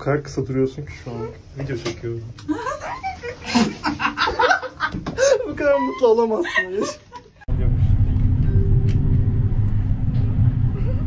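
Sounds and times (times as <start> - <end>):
electric hum: 7.5 - 11.0
tram rumble: 7.5 - 11.0.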